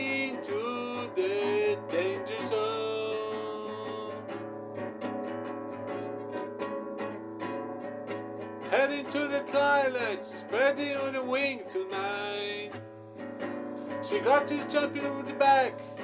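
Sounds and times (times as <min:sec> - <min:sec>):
man singing: 0:00.0 - 0:04.6, 0:08.7 - 0:12.8, 0:13.9 - 0:16.0
classical guitar strumming: 0:00.0 - 0:16.0.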